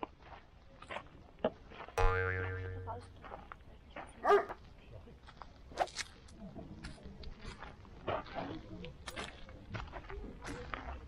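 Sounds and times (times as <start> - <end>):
cartoon boing sound effect: 2.0 - 3.2.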